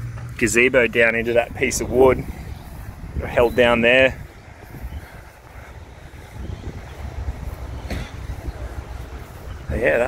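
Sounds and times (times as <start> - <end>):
wind buffeting microphone: 0.4 - 10.0.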